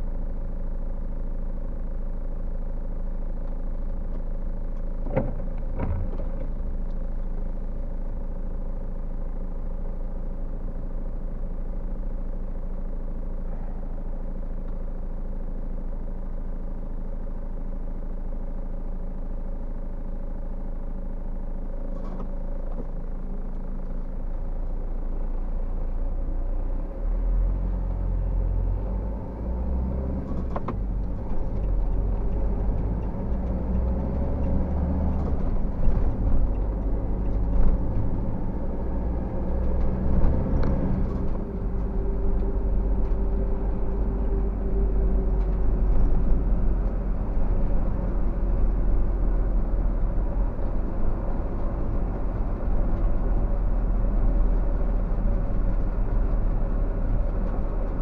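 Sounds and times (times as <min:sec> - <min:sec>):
car engine idling: 0:00.0 - 0:58.0
road rumble: 0:00.0 - 0:58.0
car pulling away: 0:25.6 - 0:58.0.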